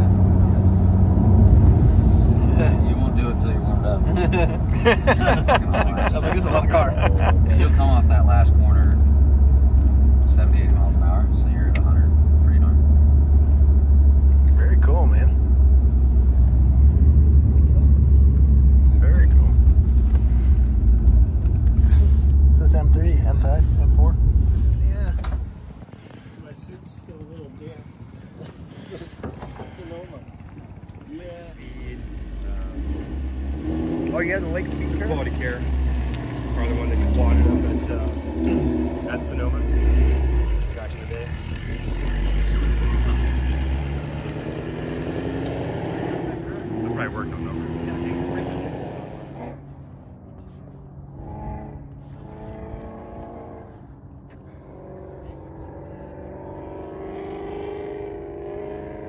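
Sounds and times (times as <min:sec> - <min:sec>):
car engine and tyres inside cabin: 0:00.0 - 0:44.6, 0:46.3 - 0:59.0.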